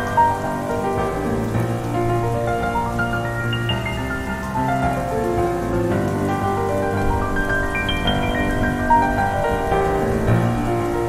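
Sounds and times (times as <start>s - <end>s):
bass: 0.0s - 11.0s.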